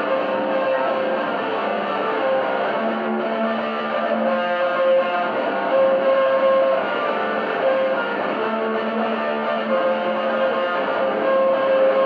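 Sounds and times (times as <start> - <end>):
electric guitar ringing notes: 0.0 - 12.0.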